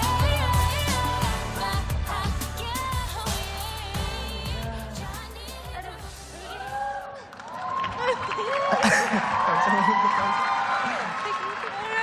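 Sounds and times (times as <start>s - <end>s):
pop song with singing: 0.0s - 7.2s.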